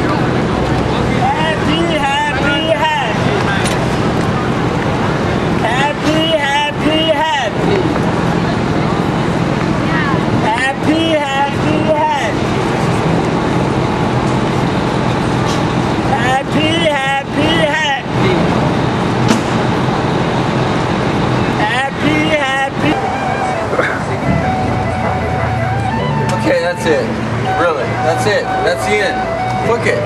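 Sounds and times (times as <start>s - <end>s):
traffic hum: 0.0s - 30.0s.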